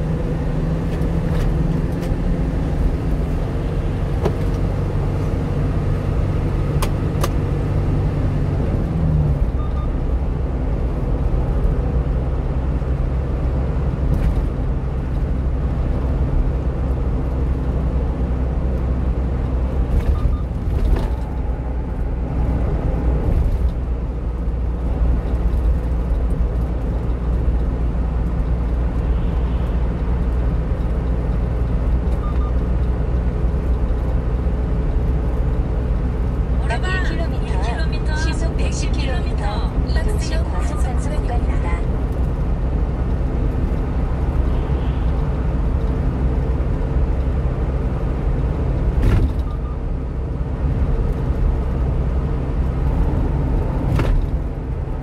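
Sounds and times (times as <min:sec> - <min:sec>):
truck engine drone: 0:00.0 - 0:55.0
tyre and road rumble: 0:00.0 - 0:55.0.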